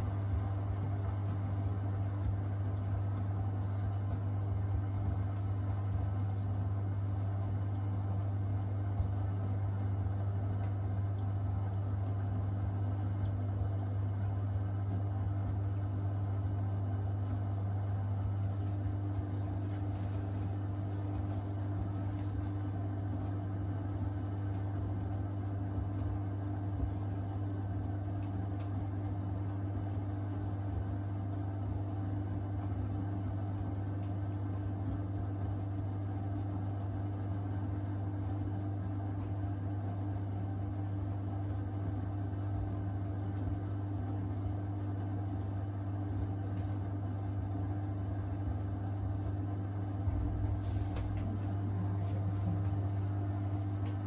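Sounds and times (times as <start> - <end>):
washing machine running: 0.0 - 54.0.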